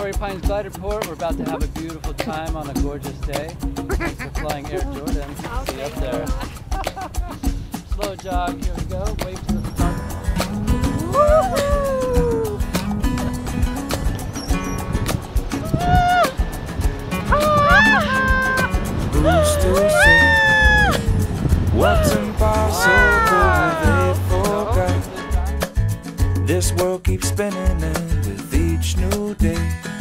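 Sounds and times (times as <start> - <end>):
background music: 0.0 - 30.0
woman whooping and squealing: 11.0 - 12.6, 15.6 - 16.4, 17.3 - 21.0, 21.8 - 24.0.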